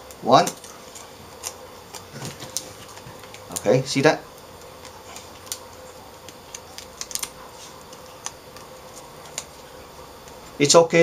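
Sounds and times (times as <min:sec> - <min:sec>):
faint room hum: 0:00.0 - 0:11.0
foil tape pressed clicking: 0:04.8 - 0:09.5.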